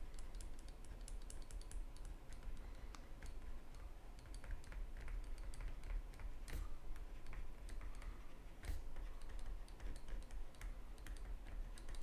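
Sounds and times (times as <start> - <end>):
low steady hum: 0.0 - 12.0
stylus tapping on tablet screen: 0.0 - 12.0.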